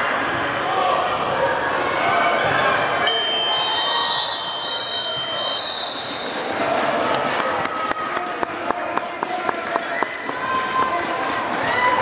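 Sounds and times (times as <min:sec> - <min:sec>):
chatter in echoing gym: 0:00.0 - 0:12.0
long high-pitched whistle blast: 0:03.0 - 0:06.2.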